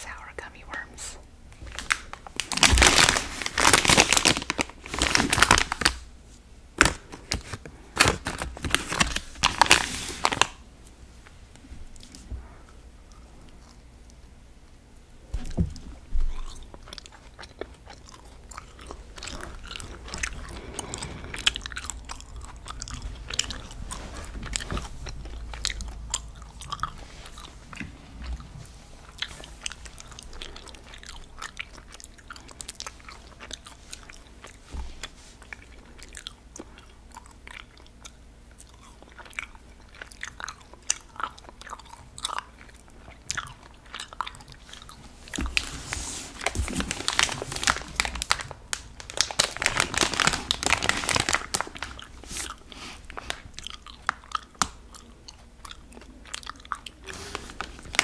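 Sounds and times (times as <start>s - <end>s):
chewing gummy sweets: 11.9s - 14.2s, 15.0s - 58.0s.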